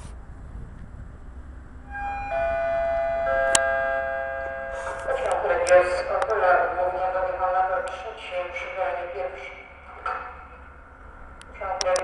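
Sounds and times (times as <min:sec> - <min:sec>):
public address chime: 0:01.9 - 0:09.7.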